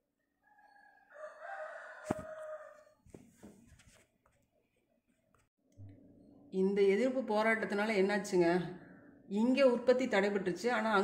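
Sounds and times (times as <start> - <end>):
rooster crowing faintly: 0.2 - 3.0.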